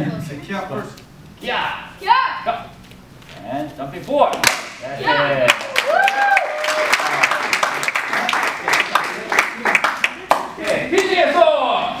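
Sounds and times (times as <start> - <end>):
applause: 5.5 - 11.1
hand claps: 5.5 - 11.2.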